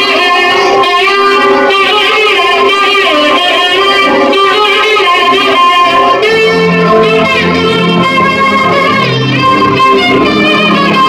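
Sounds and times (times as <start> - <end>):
film music with plucked strings: 5.8 - 11.0.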